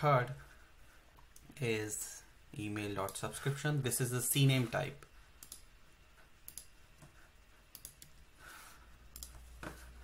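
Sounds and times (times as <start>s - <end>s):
mouse and keyboard clicks: 7.8s - 8.2s.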